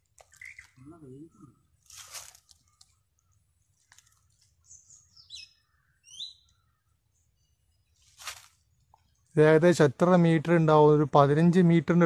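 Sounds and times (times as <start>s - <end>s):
leaves rustling: 1.7s - 5.0s, 8.0s - 8.8s.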